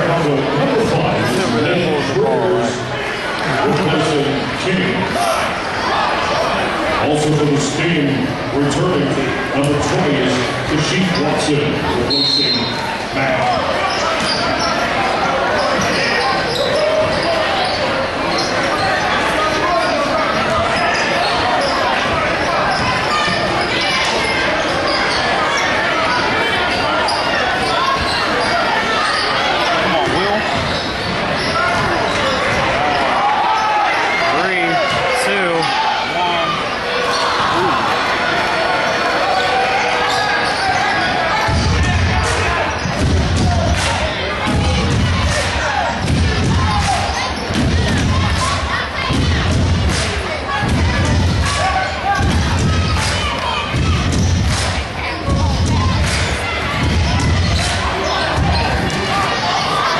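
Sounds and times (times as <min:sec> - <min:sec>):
crowd chatter and calls: 0:00.0 - 0:59.9.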